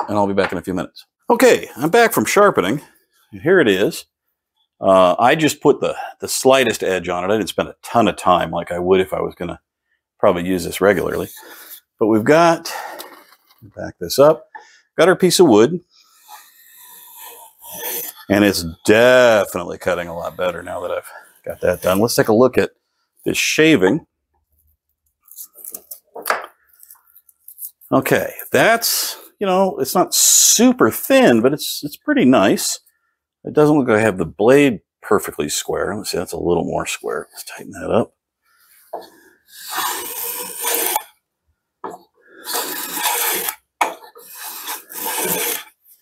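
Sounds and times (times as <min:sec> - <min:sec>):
plane shaving wood: 0:16.2 - 0:20.8, 0:39.0 - 0:41.1, 0:42.3 - 0:46.0.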